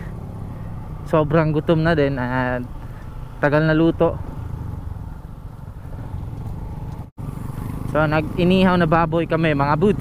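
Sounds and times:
motorcycle engine rumble: 0.0 - 10.0
wind and road noise: 0.0 - 10.0.

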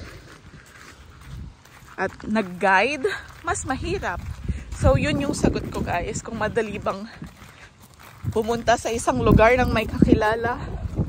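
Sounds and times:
faint footsteps on gravel: 0.0 - 11.0
wind rumble on microphone: 0.0 - 11.0.

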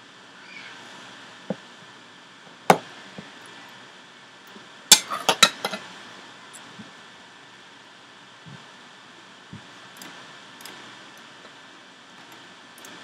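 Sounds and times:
computer mouse and keyboard clicks: 12.3 - 13.0.

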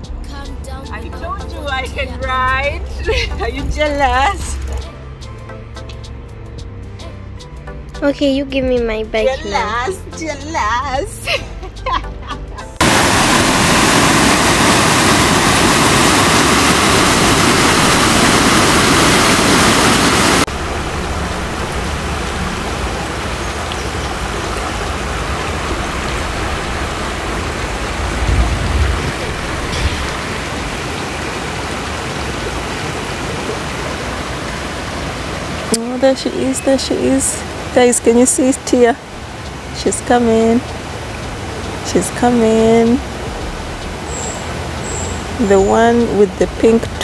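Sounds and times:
loud even rushing noise: 12.8 - 23.3
river rushing over stones: 12.8 - 45.5.

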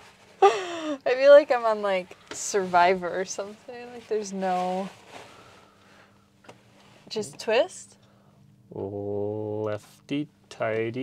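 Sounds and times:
low steady hum: 0.0 - 11.0
paper towel rustling: 2.4 - 5.7.

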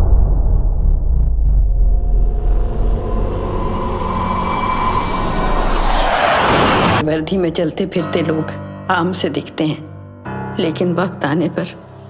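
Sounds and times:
rushing noise: 2.0 - 7.0.

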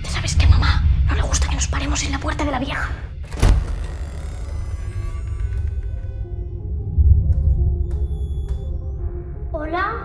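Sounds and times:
eerie drone music: 0.0 - 10.0.

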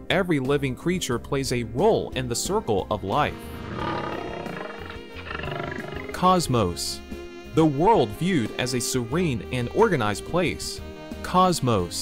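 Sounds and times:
soft background music: 0.0 - 12.0
lion roaring and growling: 3.4 - 6.2.

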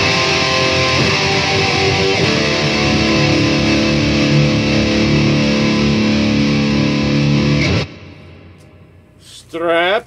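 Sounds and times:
distorted electric guitar chord: 0.0 - 8.6.

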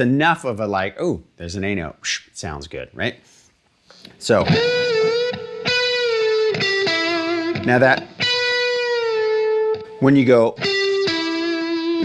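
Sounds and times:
short picked guitar note: 4.4 - 9.2
electric guitar lead note: 4.4 - 10.0, 10.6 - 12.0.

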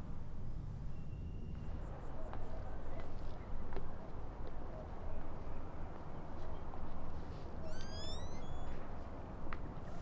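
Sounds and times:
low outdoor rumble: 0.0 - 7.7
bird rising call: 7.6 - 8.7.

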